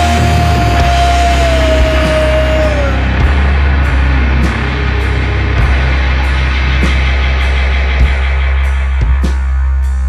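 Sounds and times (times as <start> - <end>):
long high bending note: 0.0 - 9.8
heavy rock band playing: 0.0 - 10.0.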